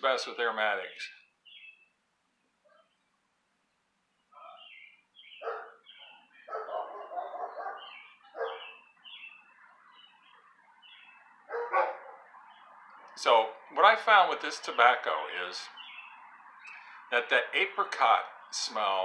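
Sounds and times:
small birds chirping: 0:00.0 - 0:19.0
dog barking: 0:05.4 - 0:08.8, 0:11.5 - 0:12.3.

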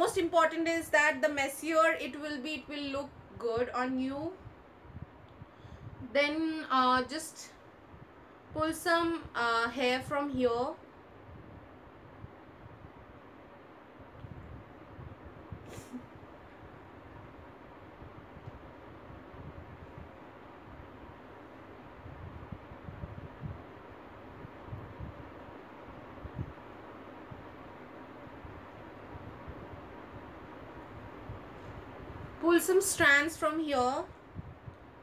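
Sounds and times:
background hiss: 0:00.0 - 0:35.0.

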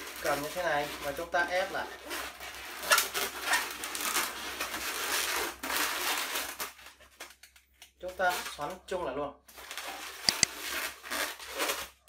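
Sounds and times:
balloon rubber squeaking and crackling: 0:00.0 - 0:07.5, 0:09.5 - 0:12.0.

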